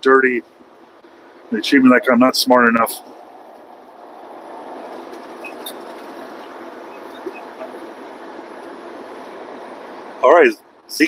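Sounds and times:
truck cab road and engine drone: 0.0 - 11.0.

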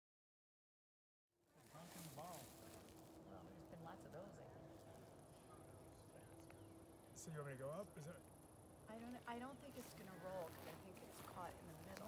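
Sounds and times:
distant people talking: 1.6 - 12.0.

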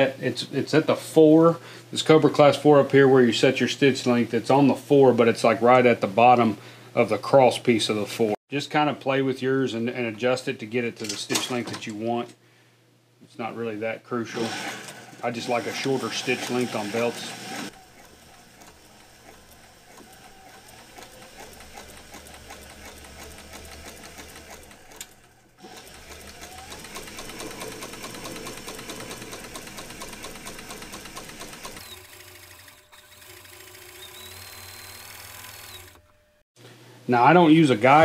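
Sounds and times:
sewing machine needle patter: 17.7 - 35.9.

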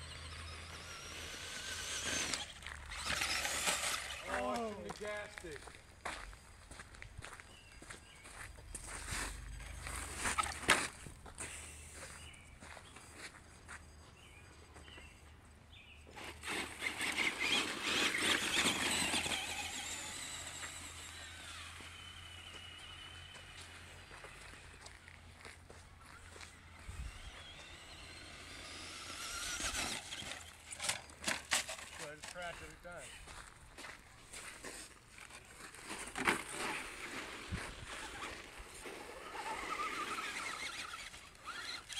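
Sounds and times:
electric motor whining: 0.0 - 5.5, 15.7 - 34.0, 34.7 - 41.9
tyres crunching on gravel: 0.0 - 15.1, 15.7 - 41.9.

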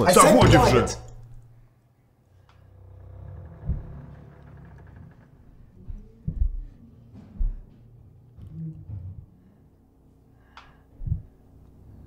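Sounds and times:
low rumbling drone: 2.5 - 12.0.

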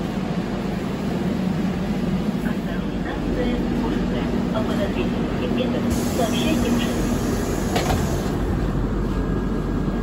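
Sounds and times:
metro car rumble and hum: 0.0 - 10.0
faint passenger voices: 1.8 - 8.4.

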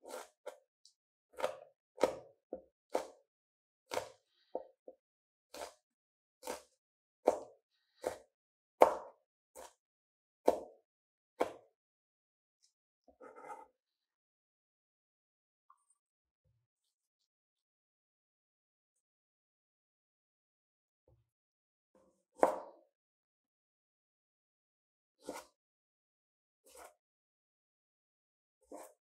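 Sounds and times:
knife chopping on cutting board: 0.0 - 0.6, 1.3 - 3.2, 3.9 - 4.7, 5.5 - 5.8, 6.4 - 9.8, 10.4 - 10.8, 11.4 - 11.7, 13.2 - 13.7, 22.4 - 22.8, 25.2 - 25.6, 26.6 - 26.9, 28.6 - 29.0.

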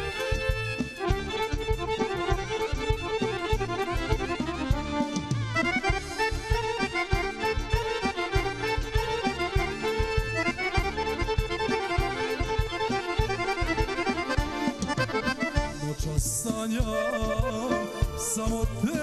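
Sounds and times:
accordion playing fast folk tune: 0.0 - 19.0
steady drum beat: 0.0 - 19.0.

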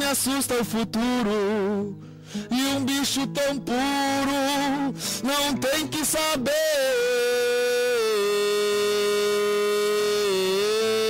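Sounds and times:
man singing a long note: 0.0 - 11.0.

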